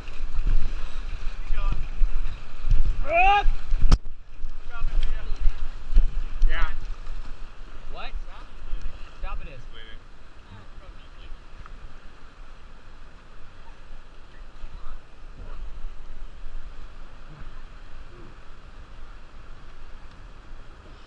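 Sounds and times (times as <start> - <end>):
wind buffeting microphone: 0.0 - 10.7
whitewater rushing: 0.0 - 21.0
people shouting: 3.0 - 3.6.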